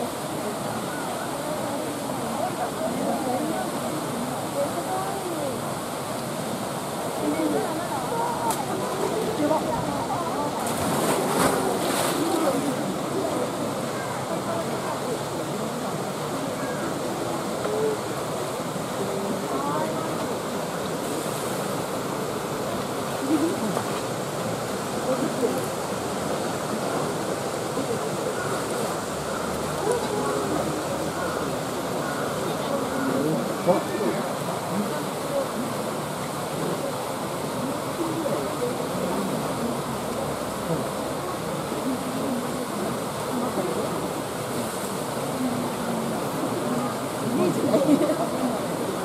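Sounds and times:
crowd chatter: 0.0s - 49.0s
polar bear splashing in water: 10.2s - 13.0s.

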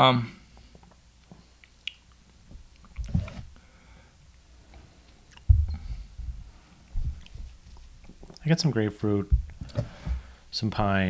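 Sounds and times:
wet mouth and lip clicks: 1.6s - 3.1s, 5.3s - 5.5s.

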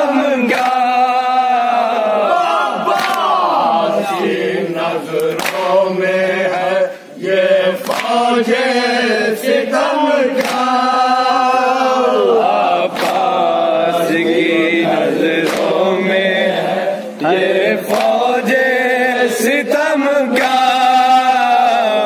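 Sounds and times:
men chanting a lament: 0.0s - 22.0s
hands slapping chests: 2.9s - 3.3s, 5.2s - 5.8s, 7.8s - 8.2s, 10.3s - 10.8s, 12.9s - 13.5s, 15.4s - 15.8s, 17.8s - 18.2s.

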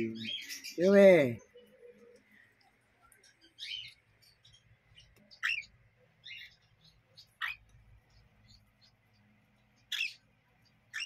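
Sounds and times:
parrot chicks calling: 0.0s - 1.5s, 3.3s - 11.0s.

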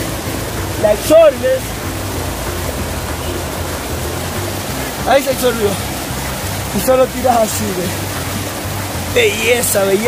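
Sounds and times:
faint music: 0.0s - 10.0s
river rushing over stones: 0.0s - 10.0s.

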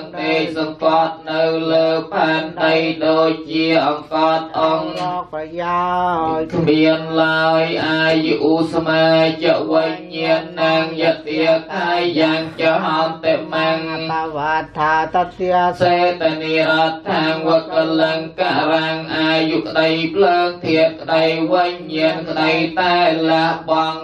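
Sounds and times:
chanting in unison: 0.0s - 24.0s.

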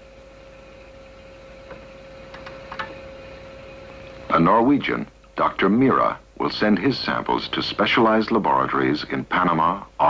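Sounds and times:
background hiss: 0.0s - 10.0s
faint steady hum: 0.0s - 10.0s.

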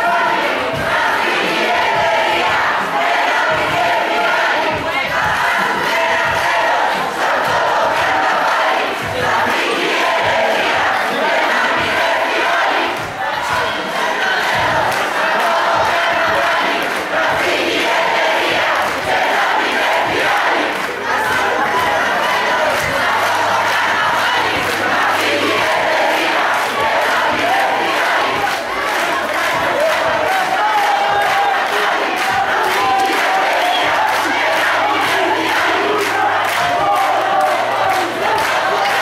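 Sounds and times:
crowd shouting slogans: 0.0s - 39.0s.

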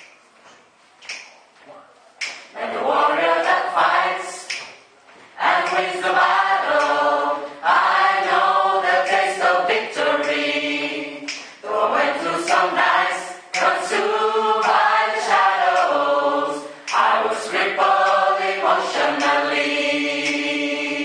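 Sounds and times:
choir singing a cappella: 2.5s - 21.0s.

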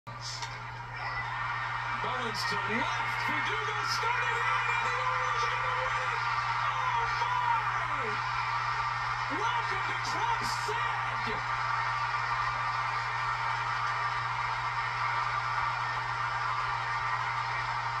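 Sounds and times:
crowd cheering and whooping: 0.1s - 18.0s
commentator speaking: 2.0s - 8.2s, 9.2s - 11.5s.

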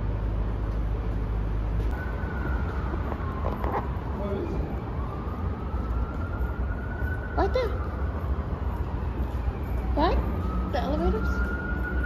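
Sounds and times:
low rumble of parking garage: 0.0s - 12.0s
distant siren wailing: 1.9s - 12.0s.

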